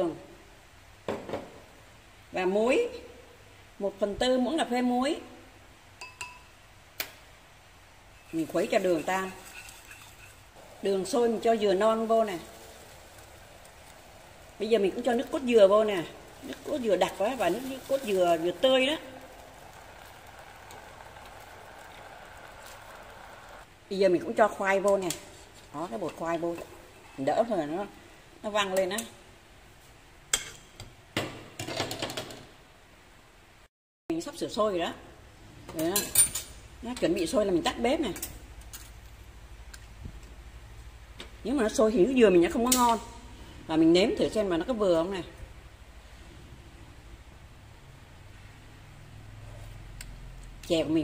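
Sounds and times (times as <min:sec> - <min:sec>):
spoon clinking on ceramic pot: 0:06.0 - 0:06.5.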